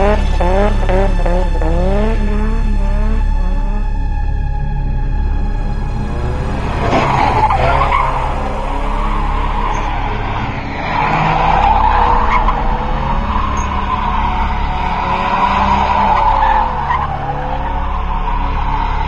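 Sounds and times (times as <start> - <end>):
car tyres squealing: 0.0 - 4.4, 5.9 - 19.0.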